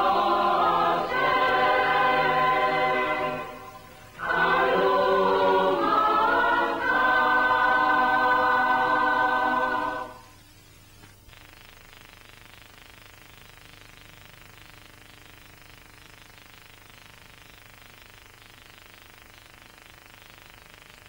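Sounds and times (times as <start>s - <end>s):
choir singing held chords: 0.0s - 10.4s.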